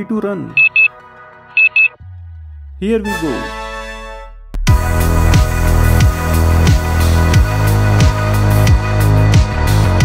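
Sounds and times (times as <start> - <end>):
background music: 0.0 - 10.0
short high electronic beeps: 0.6 - 0.9, 1.6 - 2.0.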